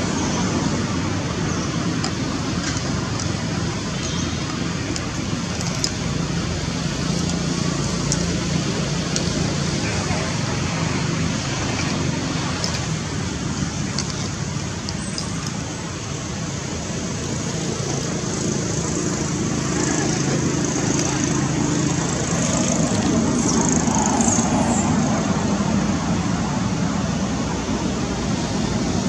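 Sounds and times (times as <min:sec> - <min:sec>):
low rumble of distant traffic: 0:00.0 - 0:29.0.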